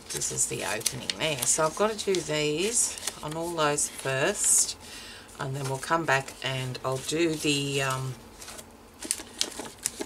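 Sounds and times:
cardboard and plastic rustling: 0:00.0 - 0:04.5, 0:05.4 - 0:10.0.

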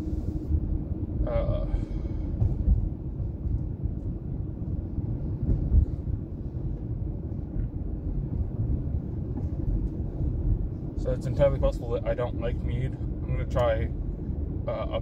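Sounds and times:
car road and engine rumble: 0:00.0 - 0:15.0.

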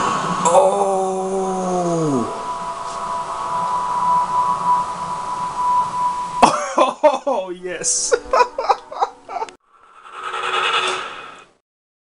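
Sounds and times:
noise-like sound effect: 0:00.0 - 0:07.4, 0:09.7 - 0:11.6
faint steady tone: 0:00.0 - 0:07.5.

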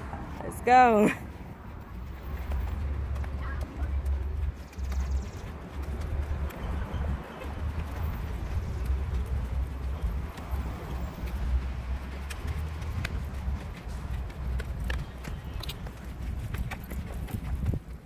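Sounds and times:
footsteps on stone steps: 0:01.0 - 0:18.0.

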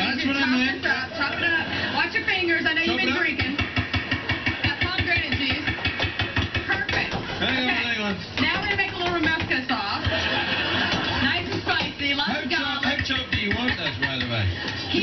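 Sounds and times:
laughter: 0:10.0 - 0:11.3.

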